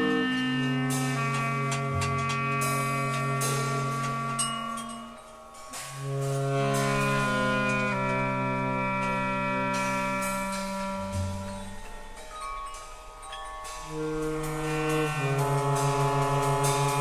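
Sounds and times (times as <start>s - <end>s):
clarinet and saxophone long notes: 0.0s - 5.4s, 6.0s - 12.1s, 13.8s - 17.0s
drum and cymbal strikes: 0.0s - 17.0s.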